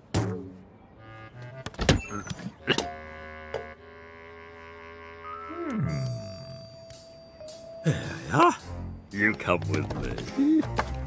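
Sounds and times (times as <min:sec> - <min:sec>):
held music notes: 0:00.9 - 0:11.0.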